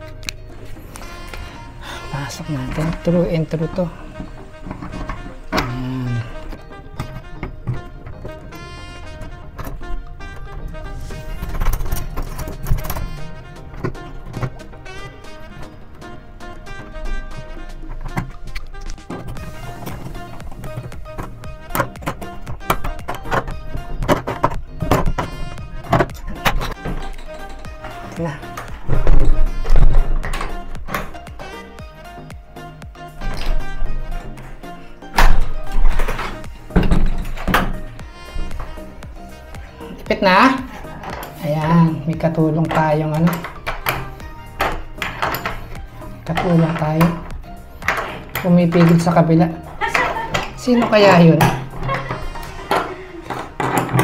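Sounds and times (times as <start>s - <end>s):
background music with beat: 0.0s - 54.0s.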